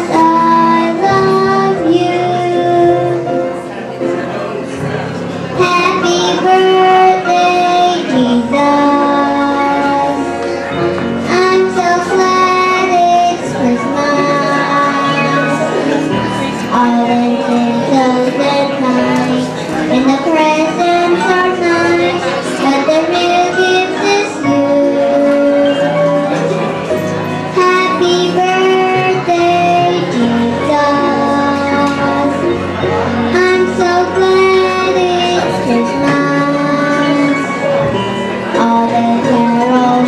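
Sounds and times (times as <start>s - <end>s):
girl singing into a microphone: 0.0s - 3.7s, 5.4s - 40.0s.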